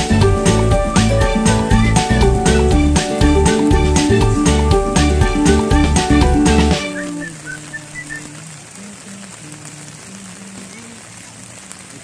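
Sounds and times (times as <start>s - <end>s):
background music: 0.0s - 8.5s
rain falling: 0.0s - 12.0s.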